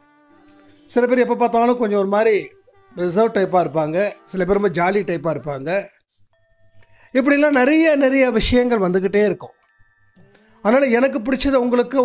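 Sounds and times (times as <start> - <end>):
person speaking: 0.9 - 6.1, 7.1 - 9.5
faint steady tones: 4.0 - 12.0.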